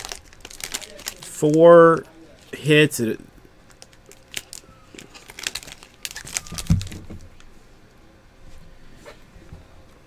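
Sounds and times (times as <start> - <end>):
foil wrapper crinkling: 0.0 - 1.7, 3.6 - 7.5.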